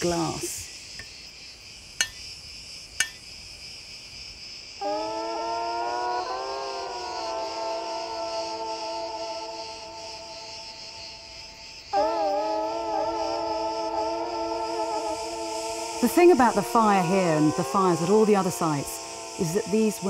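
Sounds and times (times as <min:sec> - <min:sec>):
insects buzzing: 0:00.0 - 0:20.0.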